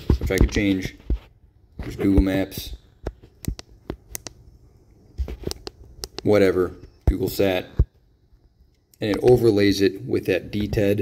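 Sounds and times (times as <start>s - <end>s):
fingertip tapping touchscreen: 3.0s - 4.4s, 5.3s - 6.3s.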